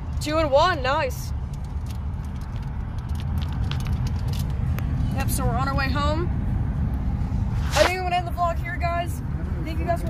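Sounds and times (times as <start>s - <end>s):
road and engine rumble inside car: 0.0s - 10.0s.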